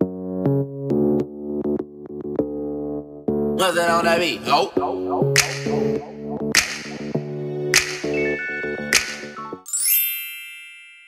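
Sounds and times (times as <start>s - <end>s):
bright ringing chime: 9.7s - 11.0s.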